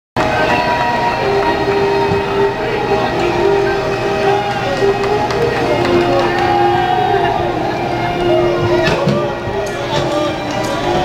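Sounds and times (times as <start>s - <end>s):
people chattering: 0.2s - 11.0s
bagpipe music: 0.3s - 11.0s.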